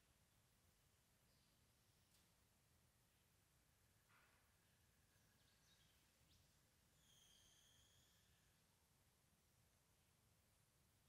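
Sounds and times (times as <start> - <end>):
faint high-pitched tones: 4.1 - 9.1.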